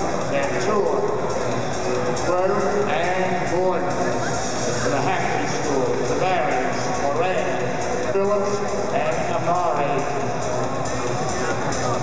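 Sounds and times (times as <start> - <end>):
indistinct voices in arena: 0.0 - 12.0.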